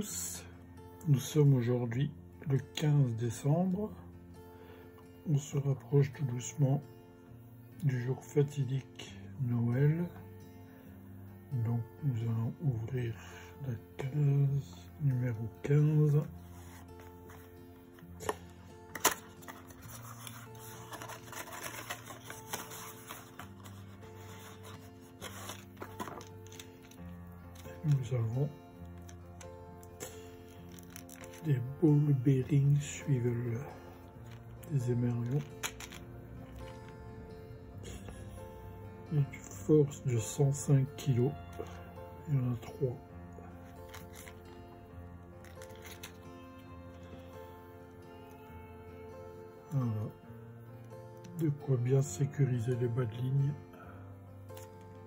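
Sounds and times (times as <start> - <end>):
soft background music: 0.0 - 55.0
plastic packet crinkling: 18.9 - 27.9, 30.0 - 31.5, 35.2 - 36.0, 43.7 - 44.4, 45.4 - 46.2
cardboard box rustling and scraping: 19.3 - 26.6.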